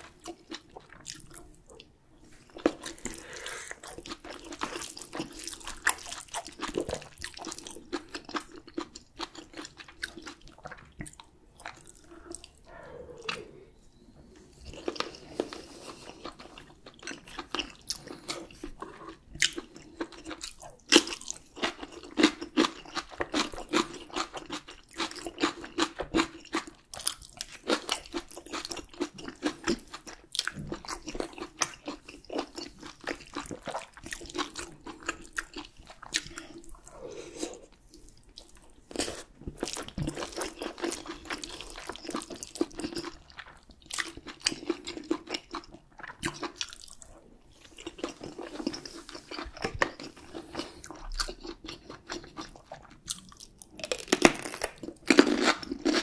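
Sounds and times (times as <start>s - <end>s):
chewing food: 0.0s - 56.0s.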